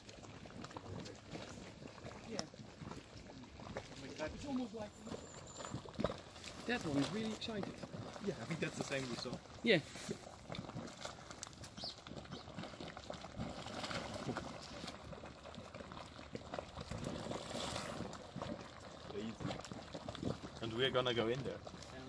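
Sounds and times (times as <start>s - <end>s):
mud bubbles plopping: 0.0s - 22.0s.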